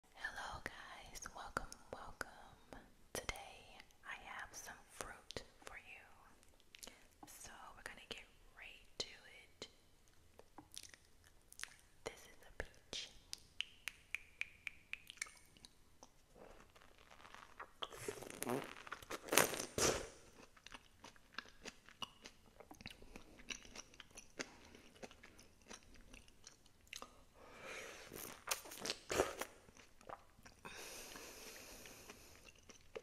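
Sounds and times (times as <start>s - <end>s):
soft whispering: 0.1s - 9.7s, 12.0s - 13.2s
wet mouth clicks: 10.4s - 11.9s, 12.6s - 16.8s, 17.5s - 20.0s, 28.2s - 30.6s, 31.5s - 33.0s.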